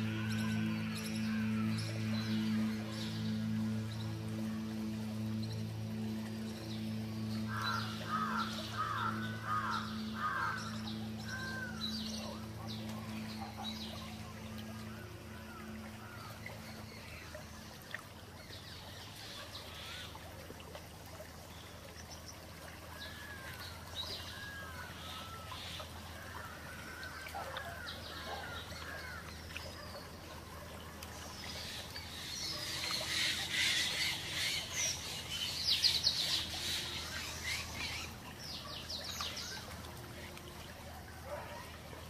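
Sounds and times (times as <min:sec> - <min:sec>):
birds chirping: 0:00.0 - 0:17.8
low ambient drone: 0:00.0 - 0:42.0.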